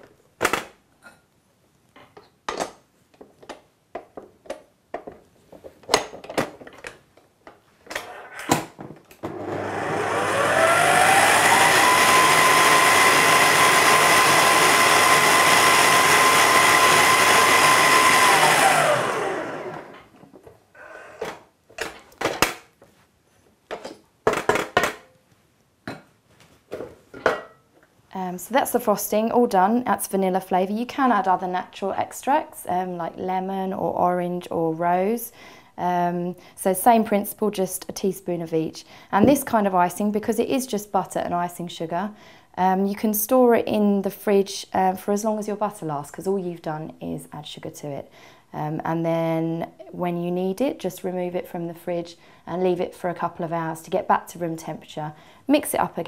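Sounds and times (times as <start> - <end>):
stand mixer motor whining: 9.3 - 20.0.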